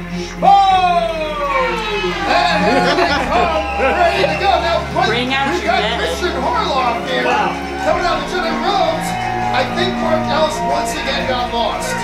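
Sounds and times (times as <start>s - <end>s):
background music: 0.0s - 12.0s
announcer drawing out a call: 0.8s - 12.0s.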